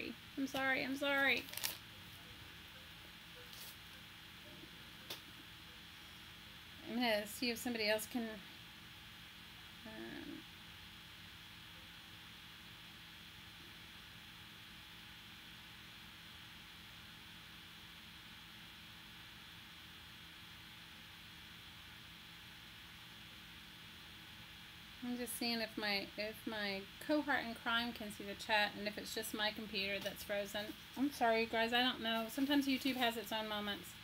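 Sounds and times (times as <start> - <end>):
faint hum and hiss: 0.0 - 34.0.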